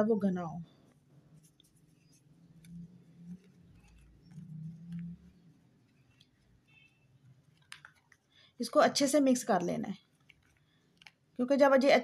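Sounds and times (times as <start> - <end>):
plastic spoon stirring in glass bowl: 0.8 - 8.3, 9.4 - 11.4.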